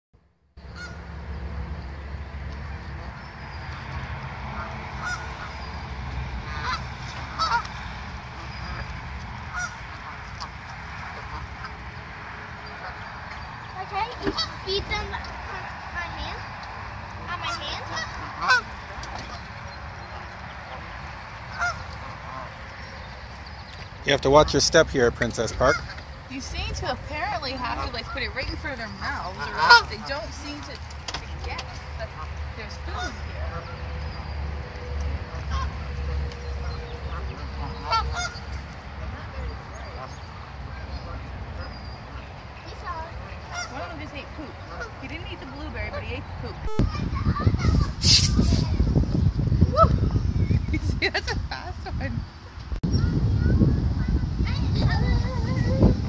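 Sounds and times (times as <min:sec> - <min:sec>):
geese honking: 0:00.6 - 0:01.4, 0:02.0 - 0:23.6, 0:24.3 - 0:30.9, 0:31.6 - 0:46.4.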